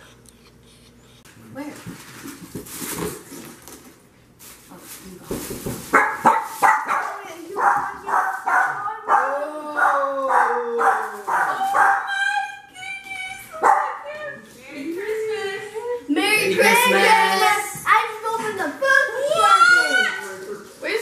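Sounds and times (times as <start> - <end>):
dog barking: 5.9 - 12.1, 13.6 - 14.1
voices: 6.9 - 21.0.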